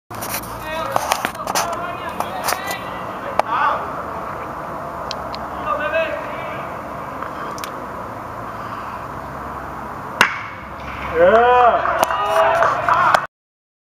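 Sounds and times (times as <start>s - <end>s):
steady outdoor noise: 0.1s - 13.3s
people calling out: 0.6s - 7.6s, 11.0s - 13.3s.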